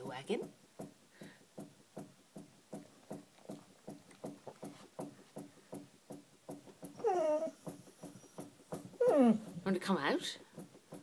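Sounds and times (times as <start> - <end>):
dog whining: 6.9 - 9.7.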